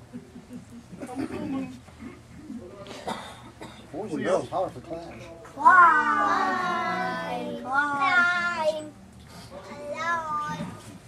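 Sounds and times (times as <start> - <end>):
people murmuring and grunting: 5.1 - 8.9.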